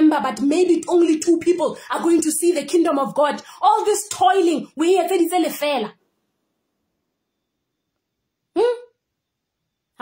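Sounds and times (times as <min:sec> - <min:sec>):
woman's voice short syllable: 0:08.6 - 0:09.0.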